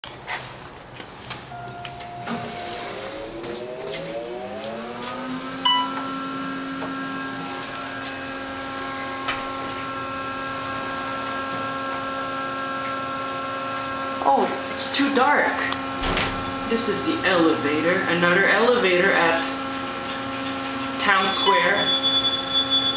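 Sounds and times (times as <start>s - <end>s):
elevator pump motor hum: 0.7s - 22.9s
elevator ding with knock: 1.5s - 2.8s, 5.6s - 6.1s.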